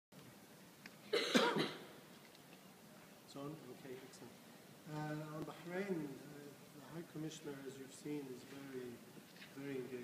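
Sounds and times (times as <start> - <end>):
low room noise: 0.2 - 10.0
person coughing: 1.1 - 1.9.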